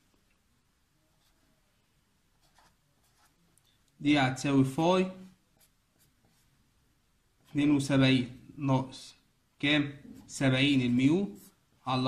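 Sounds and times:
pen scratching on paper: 0:02.4 - 0:03.4, 0:05.6 - 0:06.5, 0:11.2 - 0:11.6.

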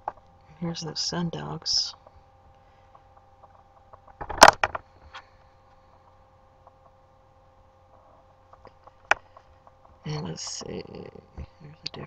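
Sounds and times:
faint electrical hum: 0:00.0 - 0:12.0
sharp clicks and knocks: 0:03.4 - 0:05.2.

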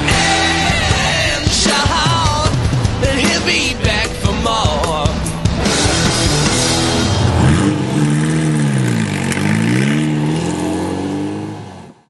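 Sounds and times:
race car engine revving: 0:00.0 - 0:12.0.

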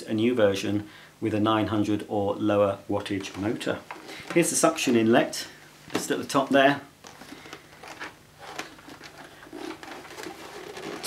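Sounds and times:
plastic vacuum handling rustle: 0:03.1 - 0:05.2, 0:07.0 - 0:11.0.

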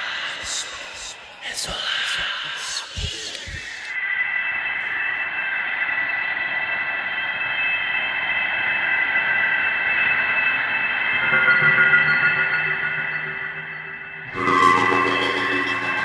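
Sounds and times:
hiss: 0:00.0 - 0:04.0
drone of high tones: 0:00.0 - 0:16.0.

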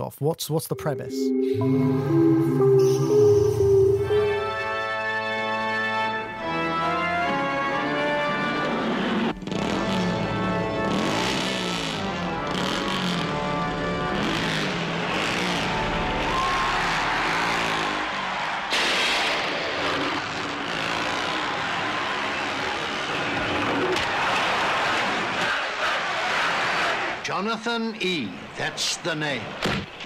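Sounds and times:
trailer music: 0:00.7 - 0:21.4
vehicle engine noise: 0:08.6 - 0:24.1.

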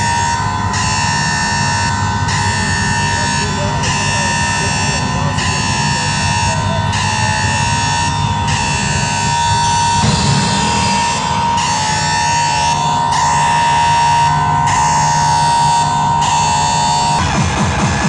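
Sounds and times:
electronic dance music: 0:09.4 - 0:18.0.

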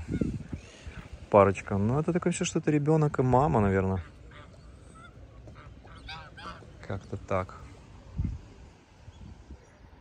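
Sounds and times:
waterfowl calling: 0:03.2 - 0:08.5.

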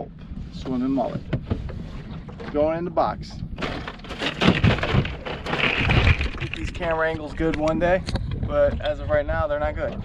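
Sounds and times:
plastic cooler lid clattering: 0:03.6 - 0:06.7.

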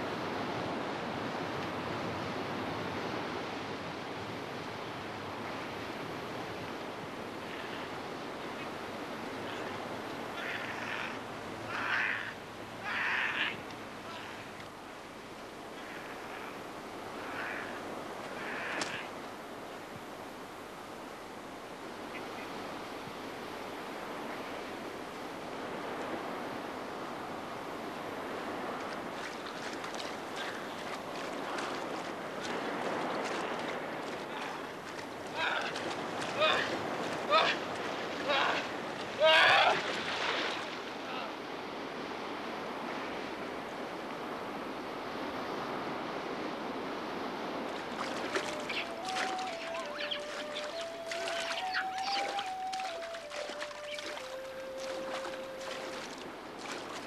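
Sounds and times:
surf: 0:00.0 - 0:57.0
wind: 0:00.0 - 0:57.0
harsh caw-like bird calls: 0:10.4 - 0:14.5, 0:15.7 - 0:16.6, 0:17.2 - 0:19.1.

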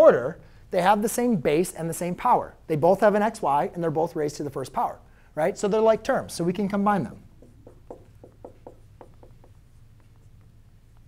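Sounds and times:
marker writing on whiteboard: 0:07.3 - 0:11.0.

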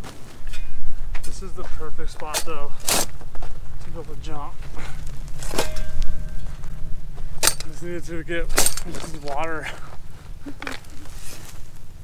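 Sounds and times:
wind rumble on microphone: 0:00.4 - 0:12.0
shovel striking rocky ground: 0:00.6 - 0:03.3, 0:04.7 - 0:06.4.

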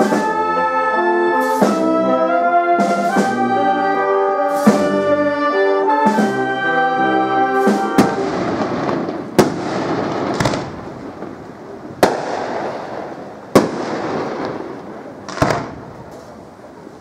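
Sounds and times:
brass band chord: 0:00.0 - 0:09.1
firework crackling: 0:04.5 - 0:05.0, 0:07.6 - 0:17.0
firework shells bursting: 0:07.8 - 0:16.4.

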